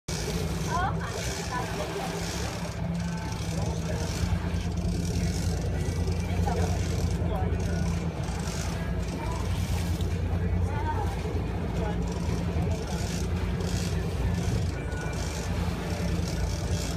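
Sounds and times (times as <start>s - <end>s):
boat engine droning: 0.0s - 16.9s.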